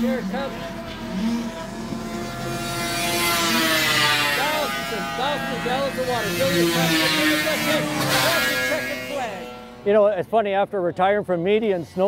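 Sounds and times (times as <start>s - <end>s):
snowmobile engine at full throttle: 0.0s - 10.2s.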